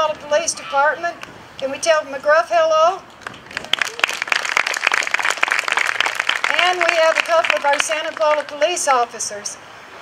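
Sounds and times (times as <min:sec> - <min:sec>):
audience clapping: 0:03.2 - 0:08.6.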